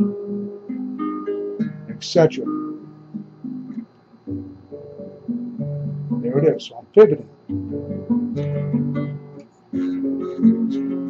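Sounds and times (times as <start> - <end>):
classical guitar fingerstyle arpeggio: 0.0 - 11.0.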